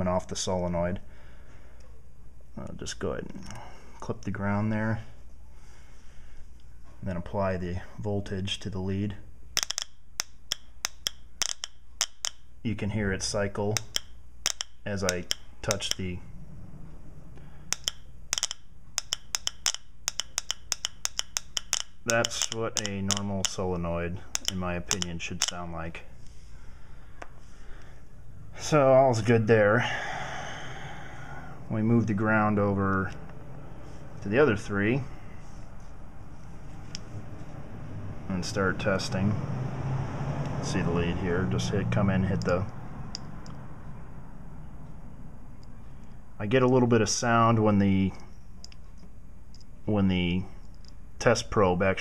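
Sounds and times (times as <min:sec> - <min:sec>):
test probe arcing clicks: 0:13.7 - 0:16.1, 0:17.4 - 0:25.6
low traffic rumble: 0:14.8 - 0:19.0, 0:21.3 - 0:52.0.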